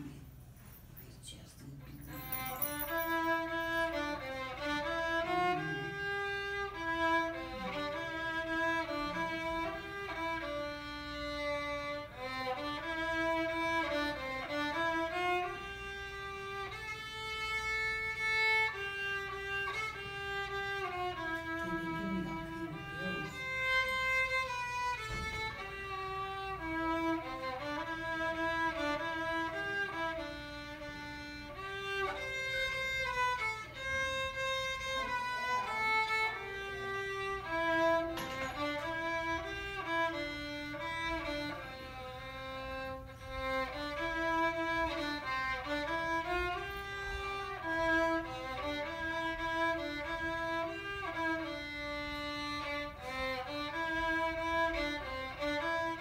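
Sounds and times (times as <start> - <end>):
solo violin melody: 2.4 - 56.0.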